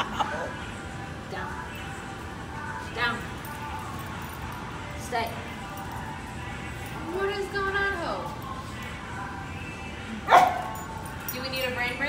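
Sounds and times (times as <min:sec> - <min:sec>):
dog barking: 0:10.3 - 0:10.8.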